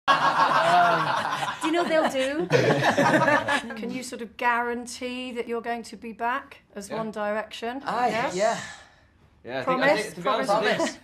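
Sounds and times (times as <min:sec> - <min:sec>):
people laughing: 0:00.1 - 0:03.8.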